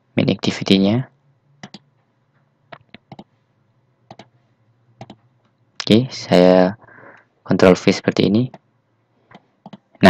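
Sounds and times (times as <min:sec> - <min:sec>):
sharp computer clicks: 0:01.6 - 0:01.9, 0:02.7 - 0:03.3, 0:04.1 - 0:04.3, 0:05.0 - 0:05.9, 0:09.3 - 0:10.0.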